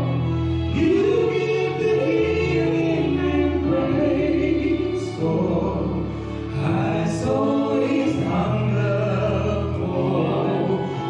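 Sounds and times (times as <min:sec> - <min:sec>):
low steady accompaniment: 0:00.0 - 0:11.0.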